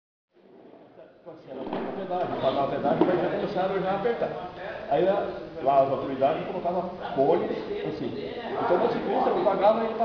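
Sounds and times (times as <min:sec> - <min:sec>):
man speaking: 0:01.5 - 0:10.0.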